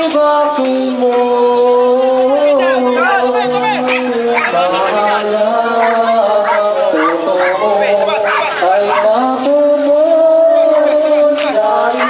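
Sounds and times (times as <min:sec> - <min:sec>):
voices chanting held notes: 0:00.0 - 0:12.0.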